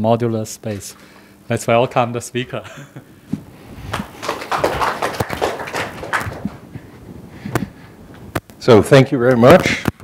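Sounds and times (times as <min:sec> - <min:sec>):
audience clapping: 0:03.8 - 0:06.7.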